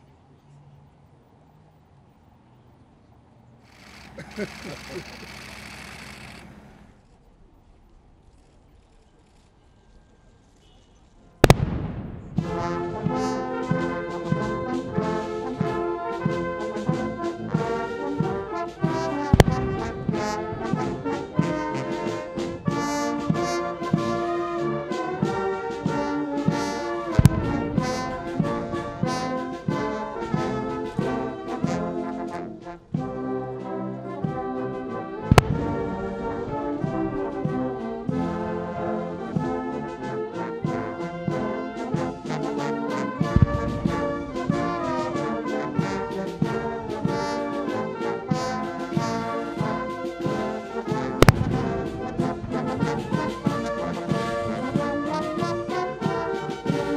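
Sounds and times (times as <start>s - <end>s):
cannon shots: 11.4s - 13.2s, 19.3s - 20.9s, 27.1s - 29.9s, 35.2s - 37.0s, 43.3s - 45.3s, 51.2s - 53.8s
brass band playing an anthem: 12.4s - 56.9s.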